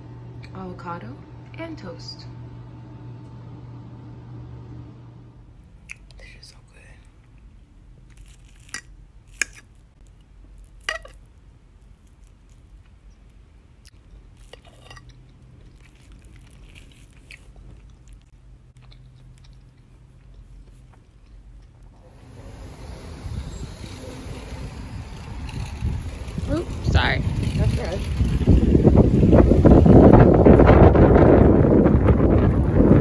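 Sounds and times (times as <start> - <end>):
person chewing and crunching food: 7.0 - 22.0.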